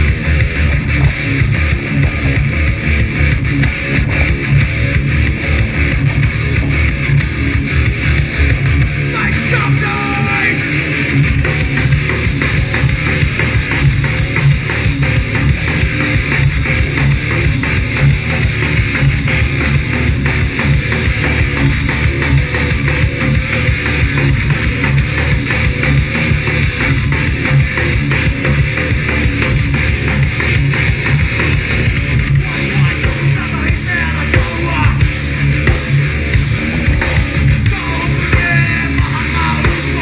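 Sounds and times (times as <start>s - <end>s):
live rock band playing loudly: 0.0s - 40.0s.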